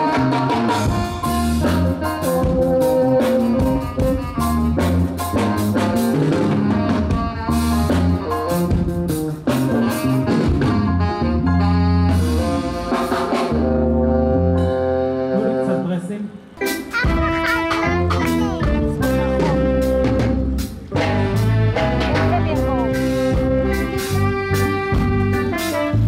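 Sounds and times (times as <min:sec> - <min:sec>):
deep bass line: 0:00.0 - 0:15.7, 0:17.1 - 0:26.0
drums: 0:00.0 - 0:15.8, 0:16.5 - 0:26.0
brass horns melody: 0:00.0 - 0:26.0
live jazzy band playing: 0:00.0 - 0:26.0.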